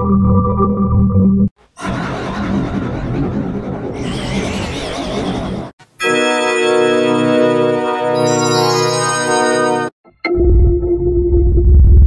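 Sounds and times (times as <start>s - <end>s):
held synthesizer chord: 6.0s - 10.6s.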